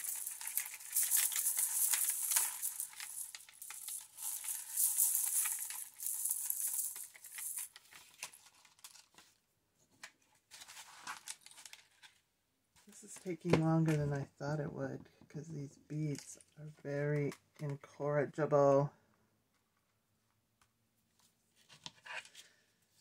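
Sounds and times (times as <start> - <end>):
beaded curtain rattling and clinking: 0.0 - 8.3.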